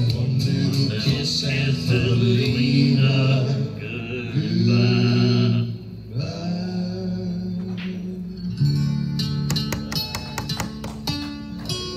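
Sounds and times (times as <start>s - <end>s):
acoustic guitar strumming and picking: 7.4s - 11.9s.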